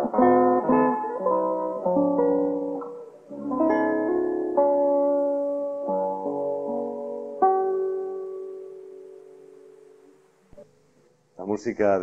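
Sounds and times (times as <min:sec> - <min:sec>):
classical guitar chord ringing: 0:00.0 - 0:10.6.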